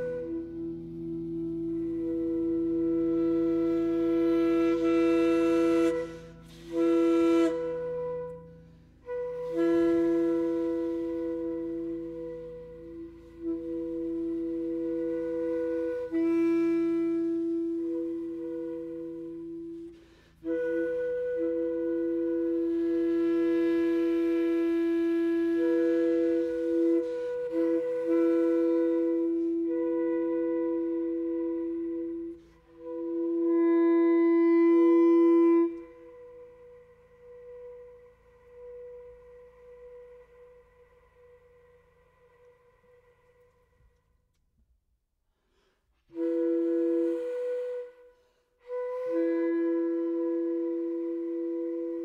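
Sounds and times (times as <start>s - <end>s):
held woodwind tones: 0.0s - 44.7s, 45.4s - 52.0s
quiet held higher tone: 34.9s - 44.5s
low drone: 35.4s - 44.2s.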